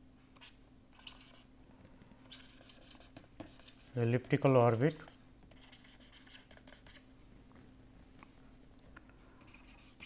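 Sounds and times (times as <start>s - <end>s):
low room hum: 0.0s - 10.0s
stylus scratching on screen: 0.4s - 1.5s, 2.3s - 7.1s, 9.5s - 10.0s.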